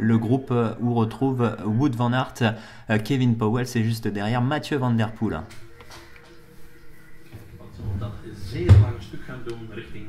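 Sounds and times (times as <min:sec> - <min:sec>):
faint background hum: 0:00.0 - 0:10.0.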